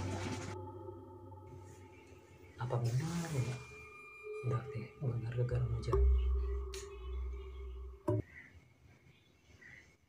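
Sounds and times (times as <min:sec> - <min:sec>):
horror soundtrack ringing tones: 0:00.6 - 0:08.3.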